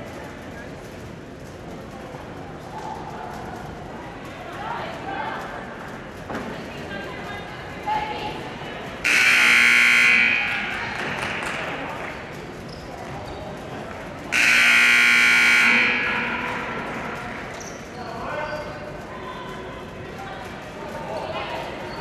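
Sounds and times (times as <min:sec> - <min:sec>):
crowd chatter: 0:00.0 - 0:22.0
scoreboard buzzer: 0:09.1 - 0:10.8, 0:14.3 - 0:16.7.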